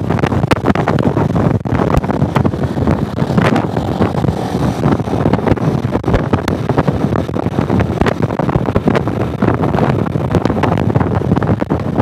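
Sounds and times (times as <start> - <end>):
motorcycle running: 0.0 - 12.0
road noise: 0.0 - 12.0
wind buffeting microphone: 0.0 - 12.0.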